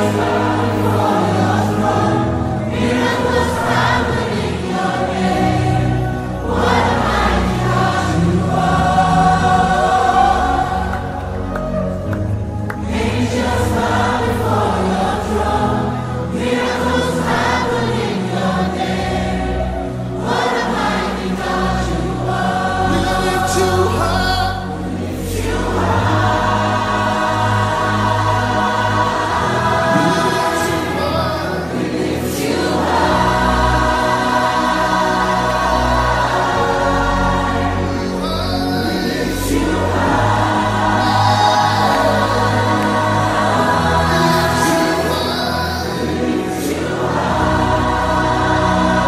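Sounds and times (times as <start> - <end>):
choir singing: 0.0 - 49.0.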